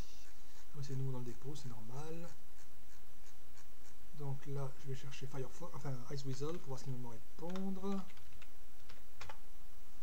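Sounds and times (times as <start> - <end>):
keystrokes on computer keyboard: 7.4 - 9.4.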